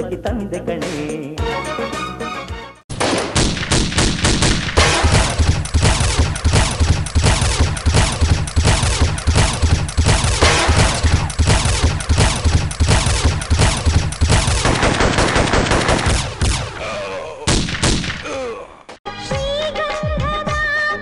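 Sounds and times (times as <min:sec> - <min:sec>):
automatic gunfire: 0:02.9 - 0:16.8.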